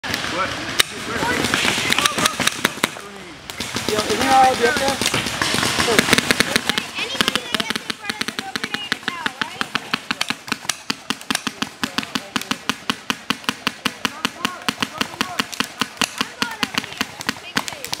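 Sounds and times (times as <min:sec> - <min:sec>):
paintball markers firing: 0:00.8 - 0:18.0
players shouting: 0:03.8 - 0:18.0.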